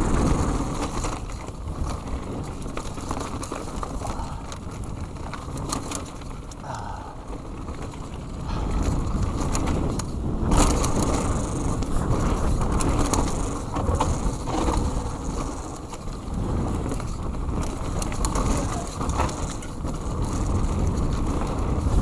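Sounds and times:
bike rattling and clicking: 0.0s - 22.0s
bike tyres crunching over dirt: 0.0s - 22.0s.

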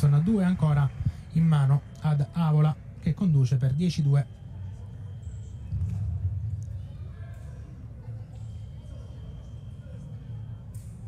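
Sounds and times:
faint background voices: 0.0s - 11.0s
steady low rumble: 5.7s - 8.2s.

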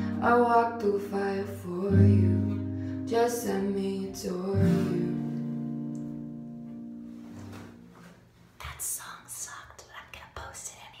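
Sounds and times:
woman whispering: 8.6s - 11.0s.

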